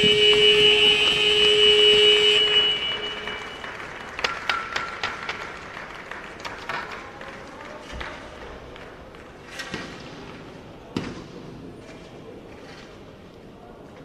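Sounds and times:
arena horn: 0.0 - 4.0
crowd noise: 0.0 - 14.0.

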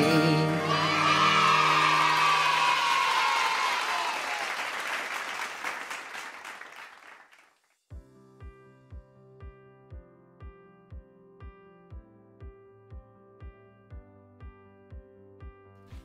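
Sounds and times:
children's worship song chord: 0.0 - 3.0
crowd applause and cheering: 0.4 - 7.6.

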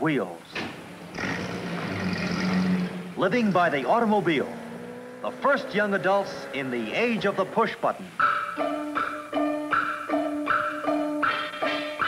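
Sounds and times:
road and traffic noise: 0.0 - 12.0
car engine running: 0.8 - 7.6.

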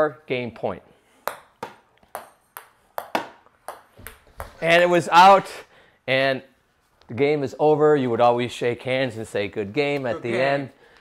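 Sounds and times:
ping pong ball bouncing on wood: 1.2 - 4.6
paddles hitting ping pong ball: 1.2 - 4.7.

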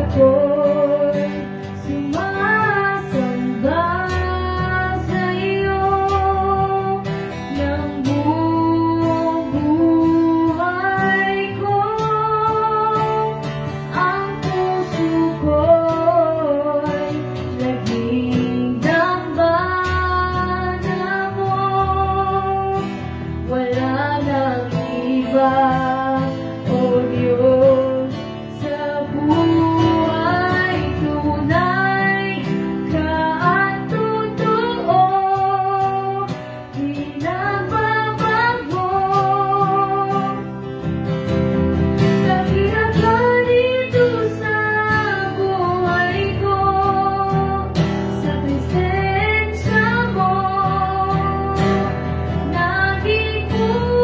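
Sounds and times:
acoustic guitar: 0.0 - 54.0
woman singing into microphone: 0.0 - 54.0.

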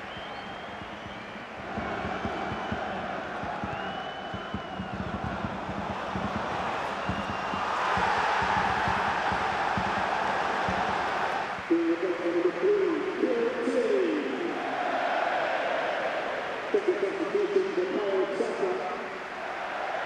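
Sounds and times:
loud voices chanting: 0.0 - 16.8, 19.2 - 20.0
stadium crowd cheering: 0.0 - 20.0.

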